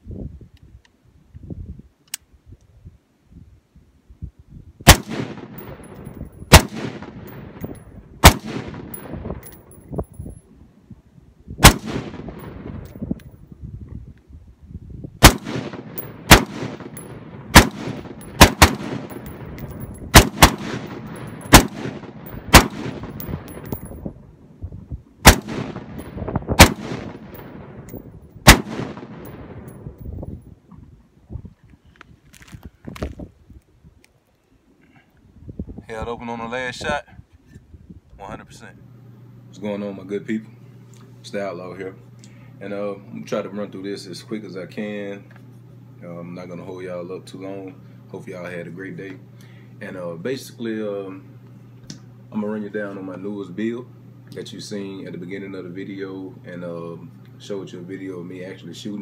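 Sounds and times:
gunshots: 4.9 - 5.9, 6.5 - 7.6, 8.2 - 9.1, 11.6 - 12.7, 15.2 - 19.4, 20.1 - 23.6, 25.2 - 27.6, 28.4 - 29.7.

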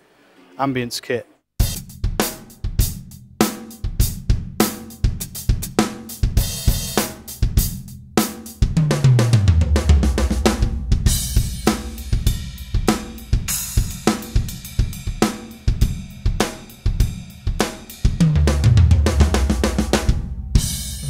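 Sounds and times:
synthesized drum kit hits: 8.7 - 16.6, 18.2 - 21.0
deep drum hit falling in pitch: 8.8 - 14.6, 18.3 - 21.0.

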